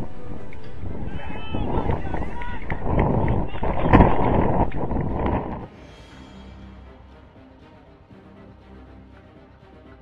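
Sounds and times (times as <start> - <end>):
wind buffeting microphone: 0.0 - 5.7
people shouting: 0.8 - 4.3.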